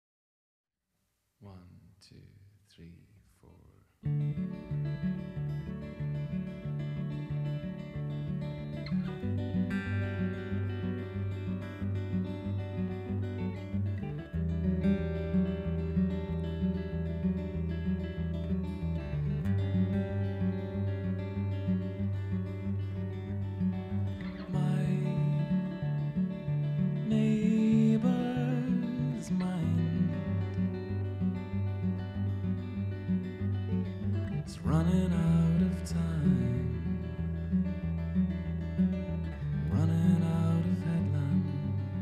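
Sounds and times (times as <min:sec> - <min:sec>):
bass guitar low notes: 0:04.0 - 0:42.0
electric guitars: 0:04.0 - 0:42.0
strummed acoustic guitar: 0:04.0 - 0:42.0.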